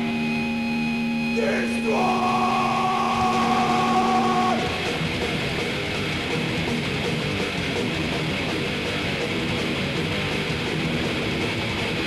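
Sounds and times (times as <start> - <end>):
distorted electric guitars ringing: 0.0 - 12.0
heavy metal band riff: 0.0 - 12.0.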